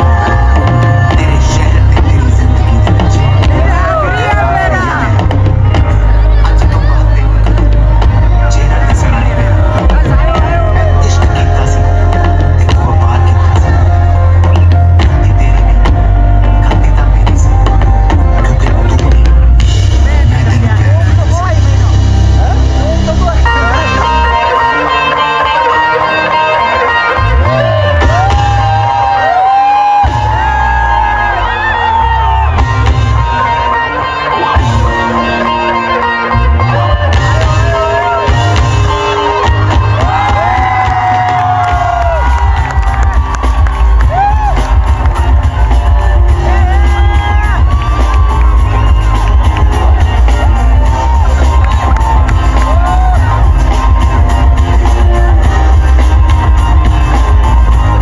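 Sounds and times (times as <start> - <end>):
person singing: 0.0 - 20.8
heavy bass: 0.0 - 58.0
live pop band playing: 0.0 - 58.0
crowd whooping and cheering: 3.2 - 12.0, 22.2 - 58.0.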